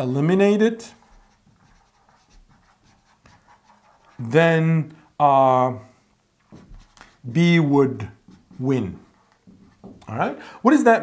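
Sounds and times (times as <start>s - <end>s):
marker writing on whiteboard: 0.9s - 4.4s, 6.5s - 7.2s, 8.0s - 10.1s.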